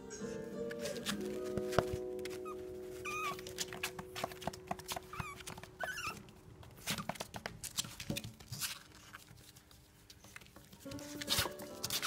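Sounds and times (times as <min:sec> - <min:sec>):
puppy squeaking: 0:02.2 - 0:06.3.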